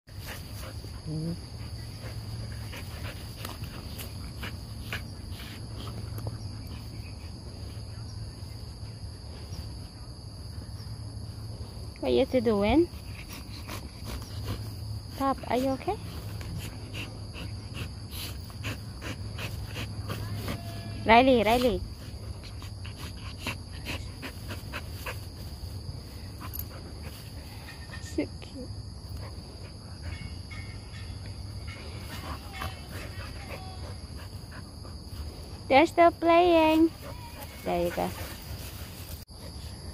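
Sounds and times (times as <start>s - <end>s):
insect chorus: 0.1s - 39.9s
puppies play-wrestling on grass: 0.1s - 39.9s.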